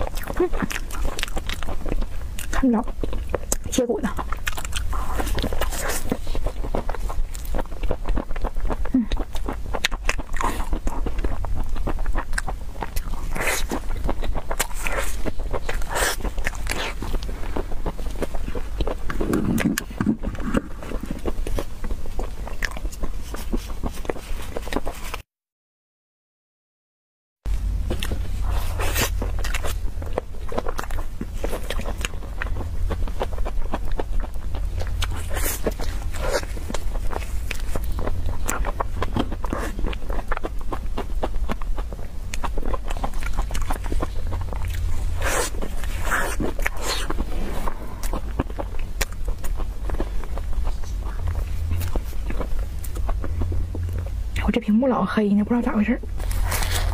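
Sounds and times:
chewing with sticky mouth clicks: 0.0 - 25.2, 27.5 - 54.4
chewing mouth clicks and smacks: 29.1 - 54.1.

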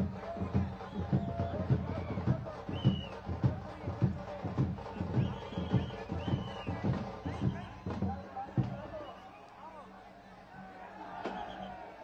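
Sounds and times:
high whistle-like tone: 4.9 - 7.9.

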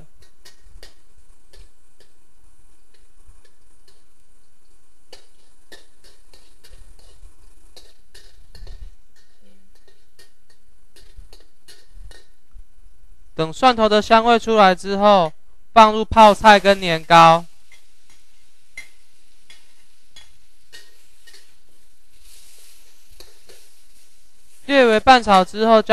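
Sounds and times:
garlic frying in oil: 0.0 - 14.2, 15.8 - 25.9
spatula scraping metal wok: 5.1 - 12.3, 17.6 - 25.0.

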